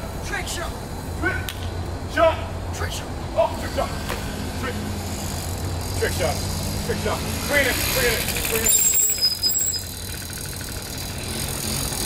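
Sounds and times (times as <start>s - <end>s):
motorbike engine idling: 5.0s - 12.0s.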